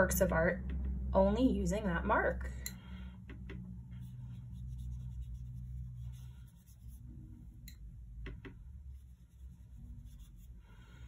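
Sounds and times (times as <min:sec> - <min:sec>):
low steady hum: 0:00.0 - 0:11.0
brush scratching on paper: 0:03.9 - 0:07.5, 0:08.9 - 0:11.0.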